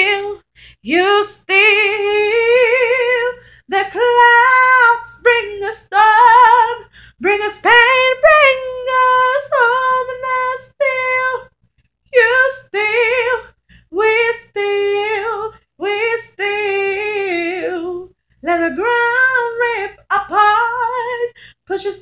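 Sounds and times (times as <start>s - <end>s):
woman singing a cappella: 0.0s - 22.0s.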